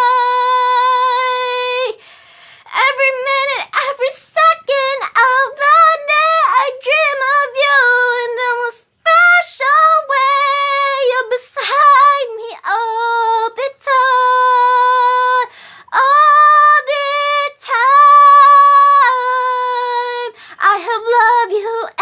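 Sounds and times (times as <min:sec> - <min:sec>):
woman singing unaccompanied: 0:00.0 - 0:02.0, 0:02.6 - 0:22.0.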